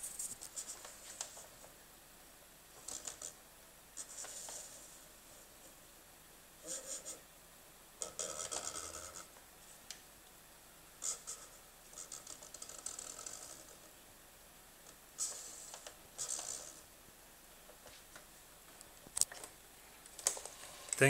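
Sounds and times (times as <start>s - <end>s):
marker scratching on paper: 0.0s - 1.6s, 4.0s - 5.5s, 6.6s - 7.2s, 11.0s - 13.8s, 15.2s - 16.9s.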